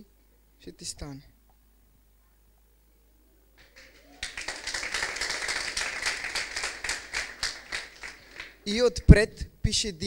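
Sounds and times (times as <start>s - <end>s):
audience applauding: 3.6s - 8.7s.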